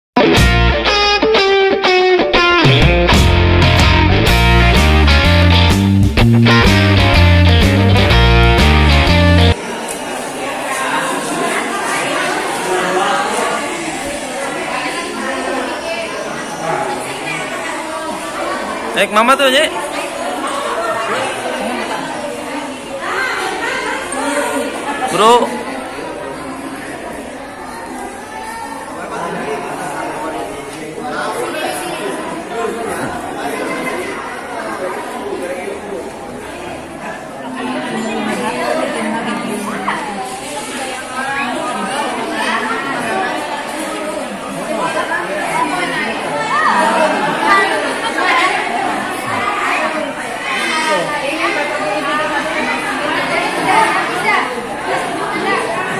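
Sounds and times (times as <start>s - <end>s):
chatter of many people: 0.1s - 55.9s
people talking at once: 0.2s - 55.9s.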